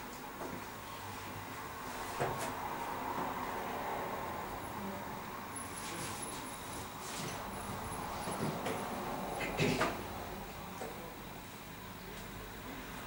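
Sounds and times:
room noise: 0:00.0 - 0:13.0.

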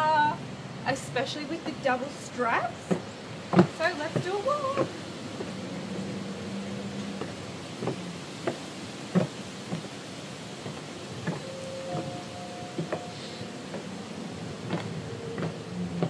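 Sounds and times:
faint steady tones: 0:00.0 - 0:16.0
steady outdoor hiss: 0:00.0 - 0:16.0.

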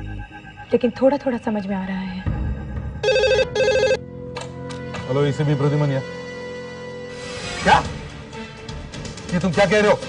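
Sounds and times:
telephone ringing with warble: 0:03.0 - 0:04.0.

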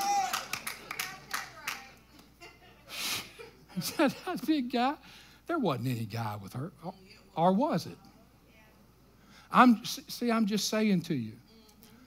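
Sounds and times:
hand claps: 0:00.0 - 0:02.3.

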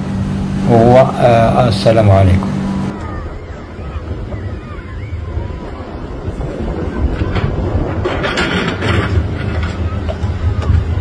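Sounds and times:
wind buffeting microphone: 0:00.0 - 0:11.0
faint high gliding whistles: 0:02.6 - 0:07.2.

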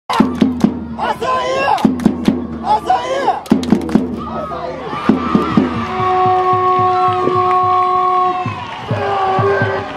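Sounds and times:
drum beating quickly: 0:00.1 - 0:09.9.

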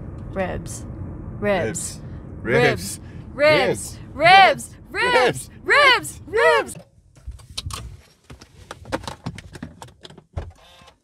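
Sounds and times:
low rumble: 0:00.0 - 0:08.0.

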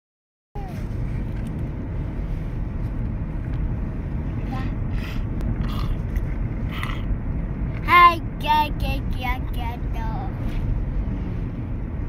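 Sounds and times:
car interior rumble: 0:00.6 - 0:12.0.

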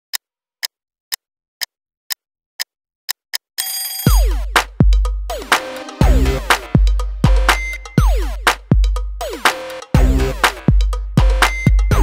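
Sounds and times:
alarm-like ring: 0:03.6 - 0:04.1.

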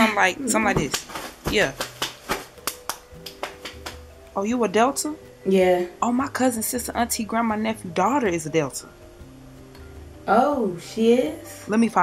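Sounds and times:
faint music: 0:00.0 - 0:12.0
hand claps and slaps: 0:00.6 - 0:04.1.

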